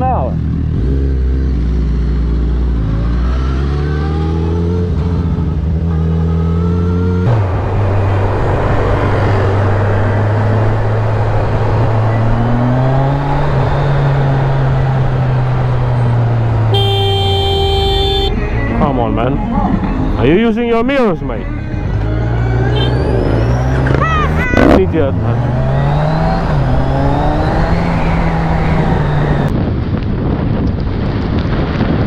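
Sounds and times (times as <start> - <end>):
motorcycle engine accelerating: 0.0 - 18.3, 21.9 - 29.8
wind and road noise: 0.0 - 32.0
vehicle horn: 16.7 - 18.5, 22.6 - 23.1.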